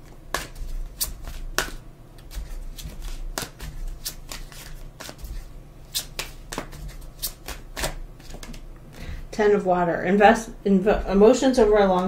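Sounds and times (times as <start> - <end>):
low steady hum: 0.0 - 12.0
cards being shuffled: 0.3 - 8.6.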